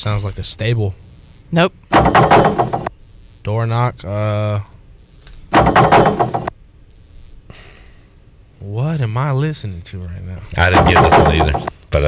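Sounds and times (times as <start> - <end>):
diving board knocking thumps: 1.9 - 2.9, 5.6 - 6.5, 10.6 - 11.7.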